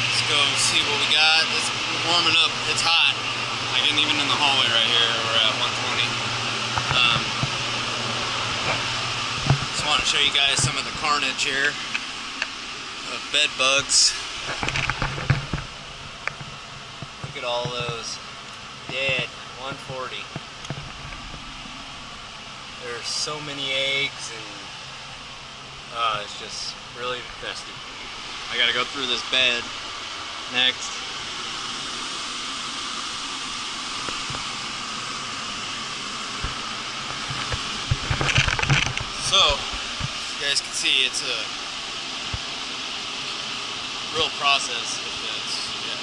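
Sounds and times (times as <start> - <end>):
air movers hissing: 0.0 - 14.6, 22.6 - 37.9.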